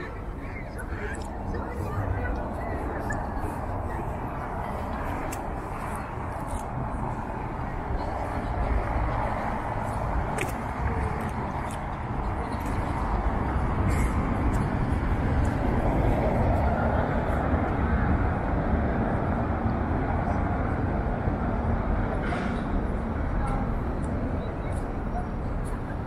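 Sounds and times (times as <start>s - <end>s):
traffic rumble: 0.0s - 26.0s.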